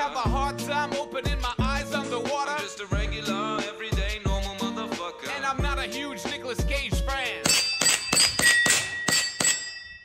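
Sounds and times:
gel balls hitting steel targets: 7.4 - 10.0.

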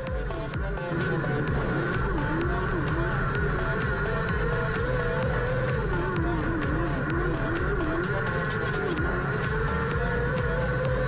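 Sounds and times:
electronic music with steady beat: 0.0 - 11.0
race car engine revving: 0.0 - 11.0.

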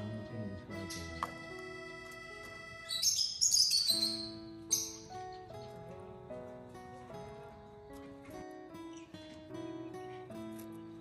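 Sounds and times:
lovebird chirping: 0.0 - 5.7
background music: 0.0 - 11.0.

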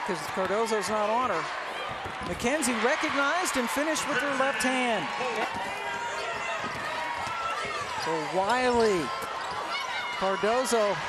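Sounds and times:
players running on hardwood court: 0.1 - 11.0.

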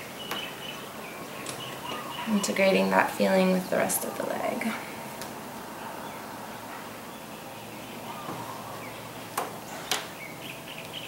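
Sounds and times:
faint bird chirps: 0.0 - 3.0, 7.1 - 11.0.

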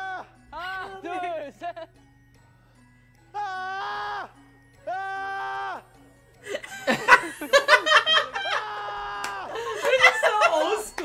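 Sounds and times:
people laughing: 6.5 - 11.0
excited voices: 8.3 - 11.0.

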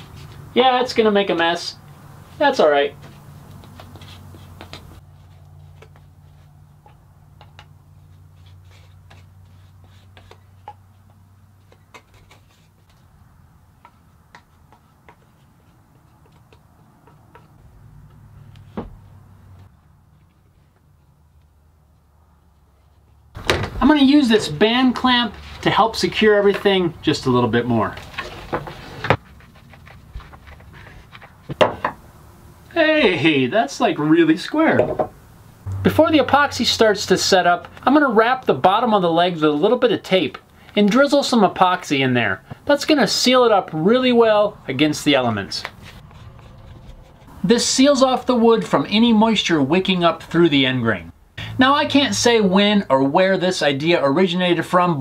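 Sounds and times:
low steady hum: 35.0 - 38.7
sharp knock: 35.7 - 36.8.

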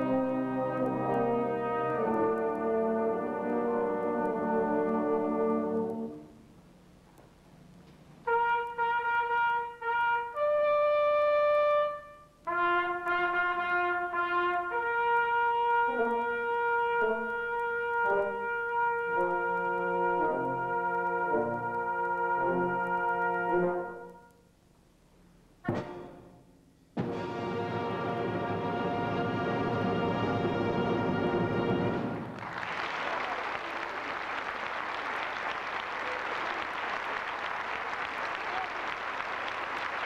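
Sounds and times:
brass band sustained chords: 0.0 - 6.4, 8.2 - 24.3, 27.0 - 32.4.

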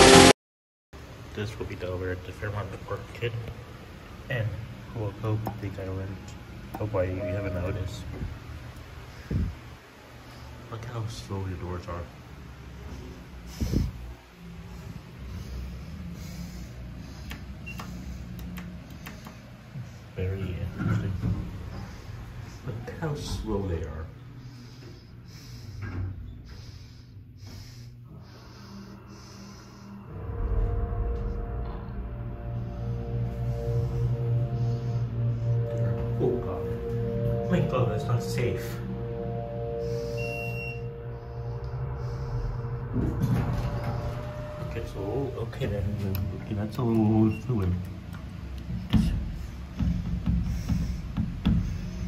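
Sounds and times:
short high whine: 0.0 - 0.3, 29.4 - 47.7
elevator cab hum: 3.6 - 10.7, 11.3 - 52.0
ringing tone: 7.2 - 8.4, 35.3 - 47.6.

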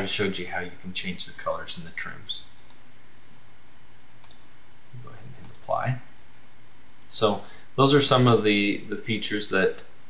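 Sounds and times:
microphone hiss: 0.0 - 10.0
computer mouse click: 2.6 - 3.5, 4.2 - 4.5, 5.4 - 5.7.

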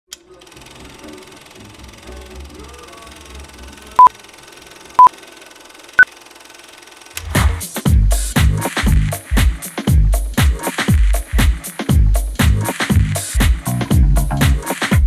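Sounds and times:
house music with heavy beat: 7.3 - 15.0.

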